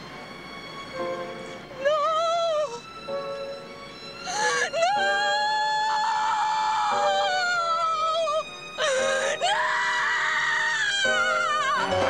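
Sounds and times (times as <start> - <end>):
background music: 0.0 - 12.0
woman wailing in anguish: 1.8 - 2.8, 4.3 - 12.0.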